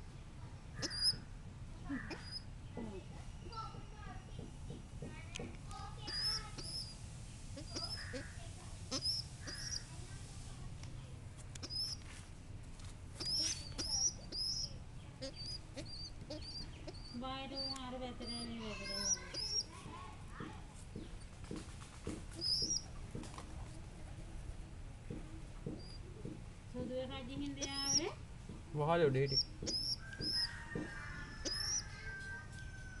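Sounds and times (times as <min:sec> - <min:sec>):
squeaky bird chirps: 0:00.8 - 0:01.3, 0:02.0 - 0:02.5, 0:06.0 - 0:07.0, 0:07.6 - 0:09.9, 0:11.6 - 0:12.0, 0:13.2 - 0:19.7, 0:22.4 - 0:22.9, 0:27.5 - 0:28.2, 0:29.2 - 0:33.0.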